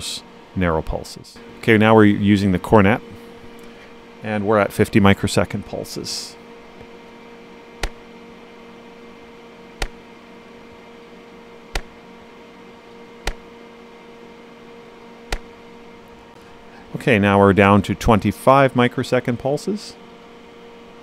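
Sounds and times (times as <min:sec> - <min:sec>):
steady hum: 0:00.0 - 0:21.0
meter clicking: 0:07.8 - 0:08.1, 0:09.8 - 0:10.0, 0:11.7 - 0:12.0, 0:13.2 - 0:13.5, 0:15.3 - 0:15.6.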